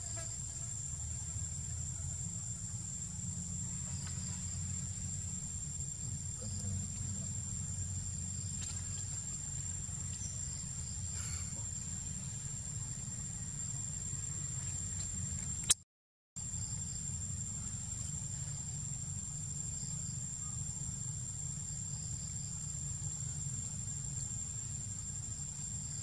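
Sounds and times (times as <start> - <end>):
insects droning: 0.0 - 15.8, 16.4 - 26.0
constant low rumble: 0.8 - 15.8.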